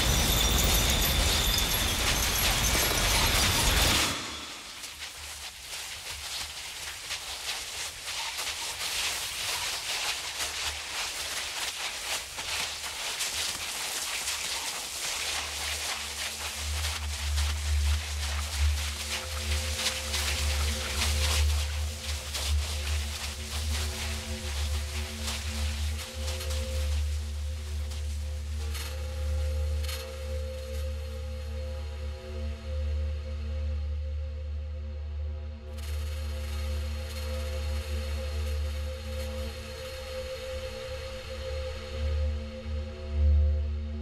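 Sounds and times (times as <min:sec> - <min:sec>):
crackling hissing noise texture: 0:00.0 - 0:34.0, 0:34.6 - 0:44.0.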